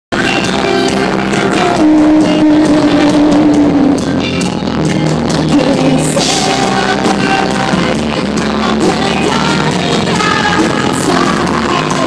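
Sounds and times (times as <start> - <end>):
live rock band playing: 0.1 - 12.0.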